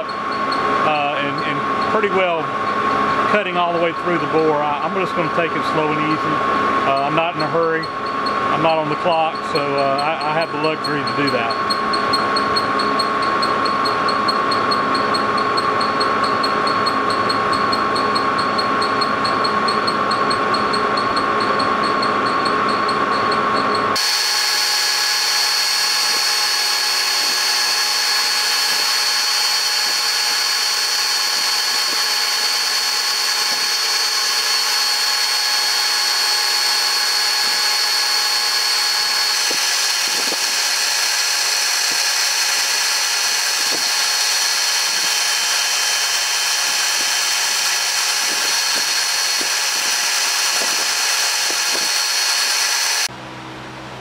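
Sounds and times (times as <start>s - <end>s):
high whining tones: 0.0s - 53.1s
lathe cutting cast iron: 0.0s - 53.1s.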